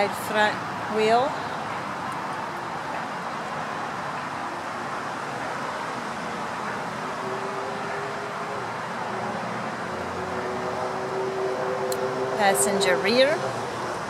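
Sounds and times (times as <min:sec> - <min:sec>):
road traffic: 0:00.0 - 0:14.0.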